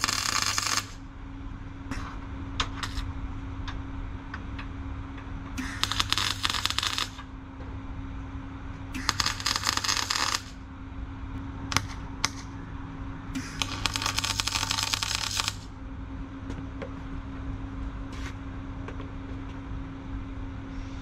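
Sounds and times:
welding arc crackling and spitting: 0.0s - 1.0s, 5.6s - 7.2s, 9.0s - 10.6s, 13.4s - 15.7s
welder machine humming: 0.0s - 3.8s, 5.4s - 16.2s.

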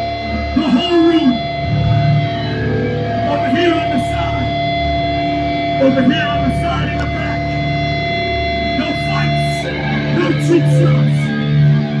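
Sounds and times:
electric guitars and bass ringing: 0.0s - 12.0s.

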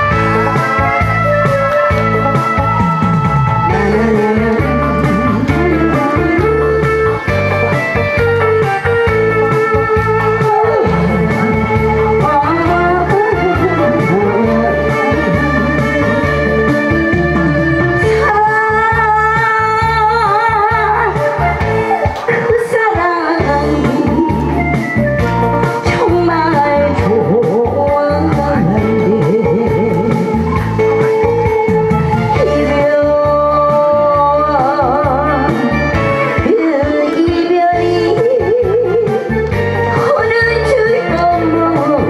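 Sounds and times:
backing track with bass and drums: 0.0s - 42.0s
instrumental accompaniment: 0.0s - 42.0s
woman singing into microphone: 0.0s - 42.0s.

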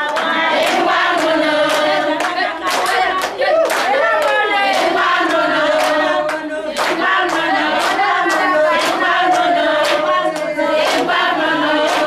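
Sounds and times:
hand claps: 0.0s - 12.0s
women singing a cappella: 0.0s - 12.0s.

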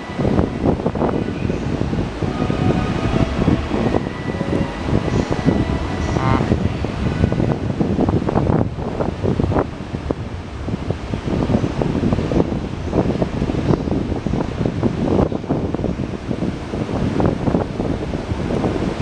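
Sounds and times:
faint steady tones: 0.0s - 10.6s
electric train humming: 0.0s - 19.0s
wind buffeting microphone: 0.0s - 19.0s.

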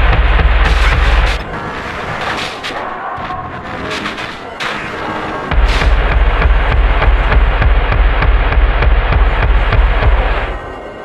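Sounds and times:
rapid evenly spaced hits: 0.0s - 10.8s
heavy low drone: 0.0s - 11.0s.

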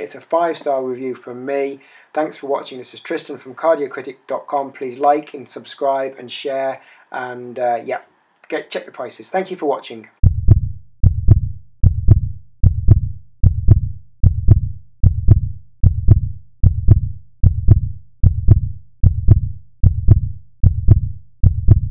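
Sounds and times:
heartbeat double thump: 10.2s - 21.9s.

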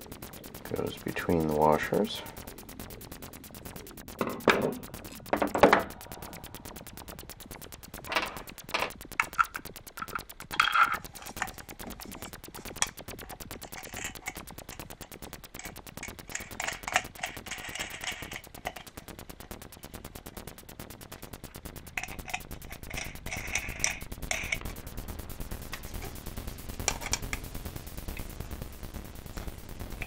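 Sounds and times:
metal screws clicking on plastic: 8.1s - 14.9s, 15.6s - 19.0s, 22.0s - 24.6s.

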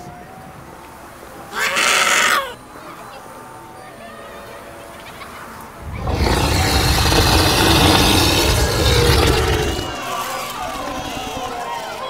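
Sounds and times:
lion roar: 5.8s - 12.0s.

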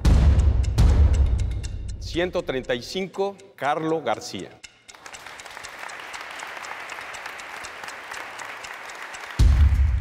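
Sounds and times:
group clapping: 4.9s - 10.0s.

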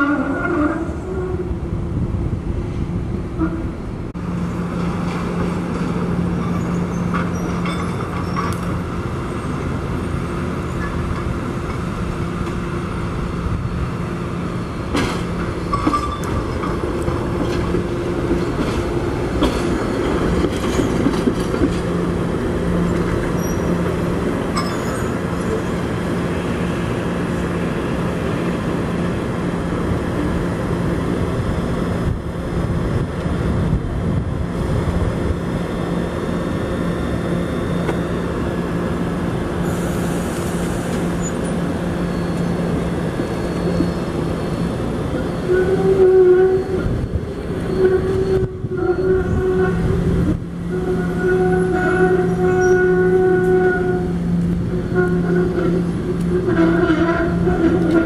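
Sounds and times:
trolley rolling on track: 15.0s - 25.9s, 41.2s - 58.0s.

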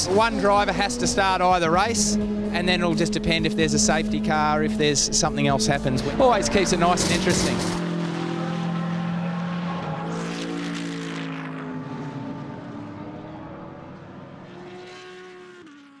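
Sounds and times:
race car engine pulling away: 0.0s - 16.0s.

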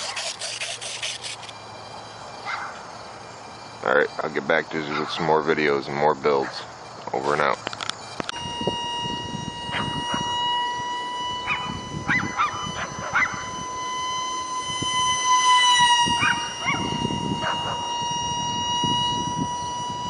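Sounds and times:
electric ducted fan whine: 0.0s - 20.0s.

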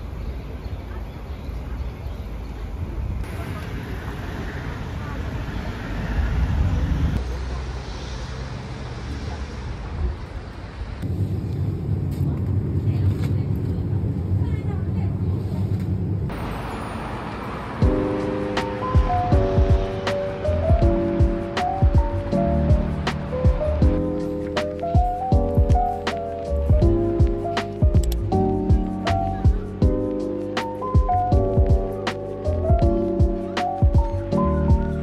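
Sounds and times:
traffic and street noise: 0.0s - 35.0s
light melodic music: 16.3s - 35.0s.

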